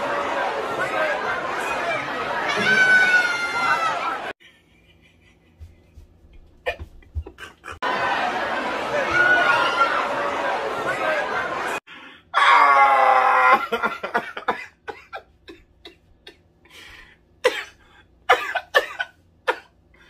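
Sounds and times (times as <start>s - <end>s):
crowd voices in nightclub: 0.0s - 4.4s, 7.8s - 11.9s
man laughing loudly: 6.7s - 7.8s, 13.6s - 16.4s
man coughing: 13.7s - 16.0s, 17.4s - 19.8s.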